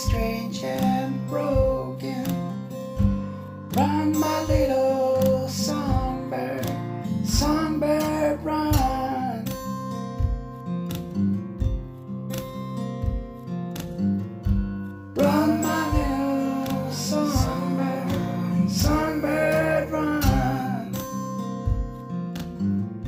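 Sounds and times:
wordless vocal melody: 0.0s - 9.9s, 15.0s - 22.0s
acoustic guitar chords: 0.0s - 23.0s
steady low beat: 11.5s - 23.0s.

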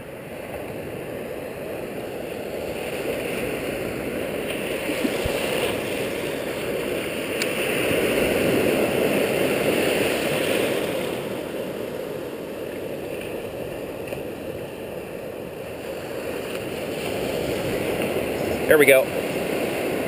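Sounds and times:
ocean waves breaking: 0.0s - 20.0s.

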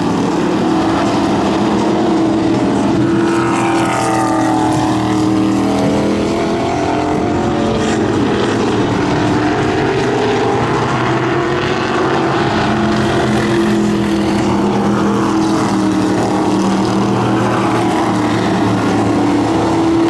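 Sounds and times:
race car engines droning: 0.0s - 20.0s.

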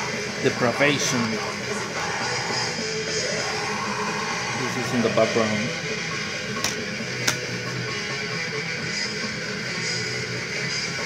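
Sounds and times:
death metal music: 0.0s - 11.0s
plastic case clicks: 6.6s - 7.5s.

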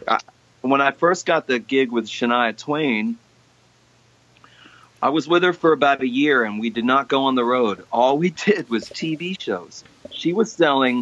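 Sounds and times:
man's voice: 0.0s - 3.2s, 5.0s - 11.0s
faint background hiss: 0.0s - 11.0s
faint breathy vocal sound: 4.4s - 5.0s.

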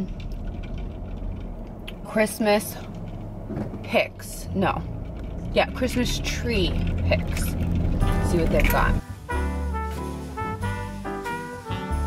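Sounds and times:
car idling hum in cabin: 0.0s - 9.4s.

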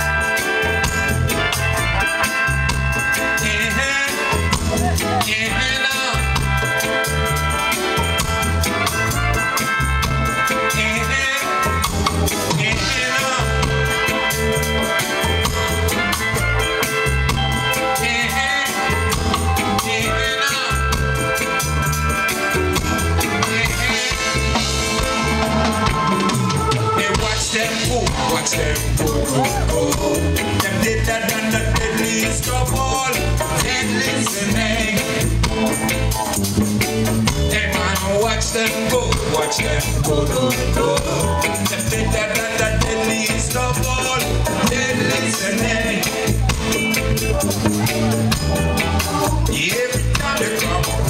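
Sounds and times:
bass line: 0.0s - 51.0s
drum kit with hi-hat: 0.0s - 51.0s
electric guitar: 0.0s - 51.0s
keyboard: 0.0s - 51.0s.

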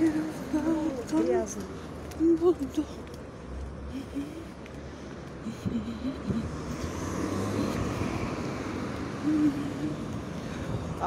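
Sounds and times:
car driving past: 6.3s - 11.0s.

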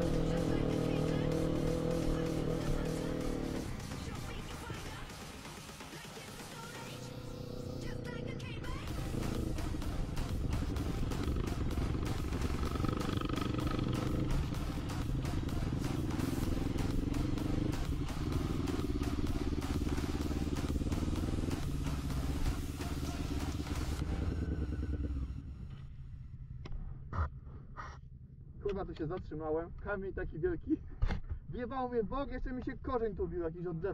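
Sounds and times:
music: 0.0s - 25.4s
quad engine running hard: 0.0s - 25.6s.

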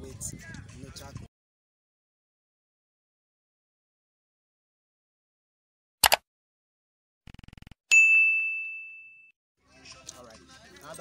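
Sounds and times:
notification bell ding: 7.9s - 9.3s.

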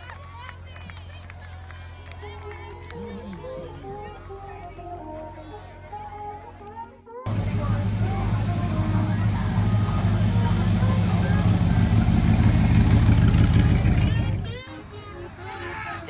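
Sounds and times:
car engine rumbling past: 7.3s - 15.6s.

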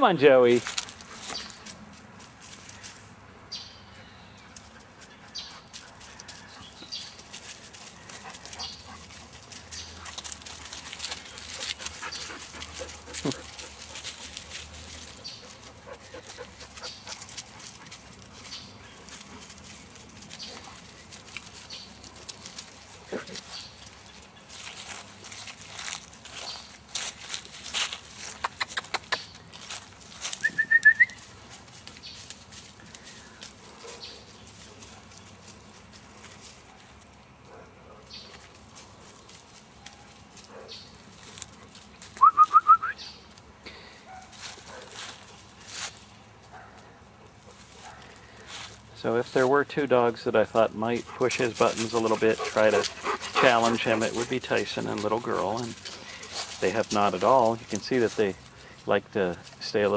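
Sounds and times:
dogs rustling in leaves: 0.0s - 3.2s, 4.5s - 28.4s, 29.4s - 37.4s, 38.1s - 42.2s, 44.0s - 59.9s.

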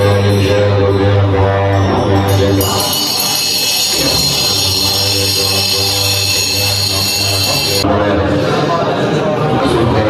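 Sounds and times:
monks chanting in a deep drone: 0.0s - 10.0s
high ringing tone: 1.8s - 7.9s.

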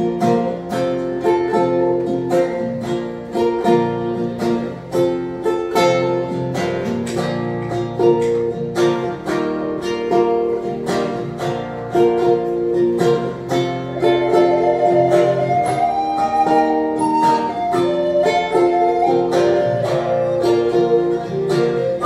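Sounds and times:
acoustic guitar strumming: 0.0s - 22.0s
flute long held note: 14.0s - 22.0s.

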